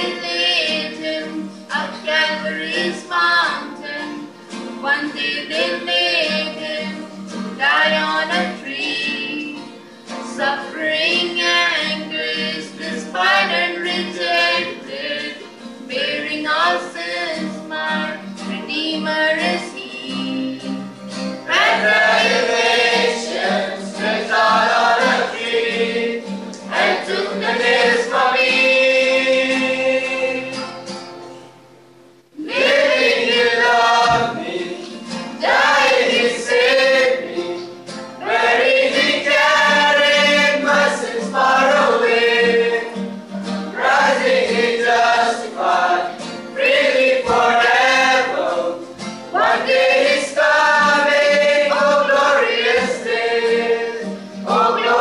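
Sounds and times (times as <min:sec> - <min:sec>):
group singing gospel in harmony: 0:00.0 - 0:20.8, 0:21.4 - 0:31.0, 0:32.4 - 0:55.0.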